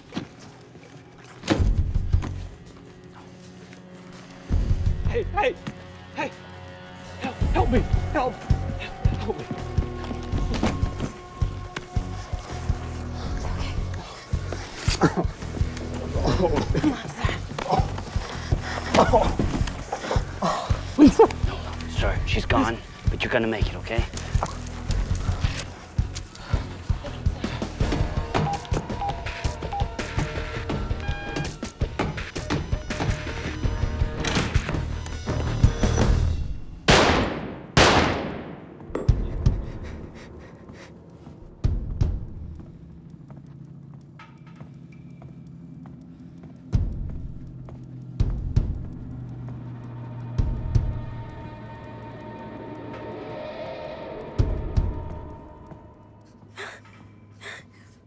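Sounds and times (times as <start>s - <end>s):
low drone: 39.0s - 57.9s.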